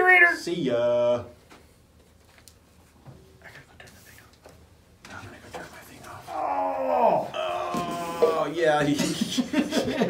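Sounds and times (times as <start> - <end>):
man groaning: 6.3 - 8.6.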